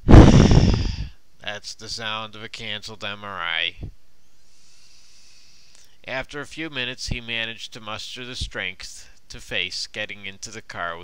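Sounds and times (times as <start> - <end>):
exhale into microphone: 0.1 - 1.2, 4.4 - 6.0.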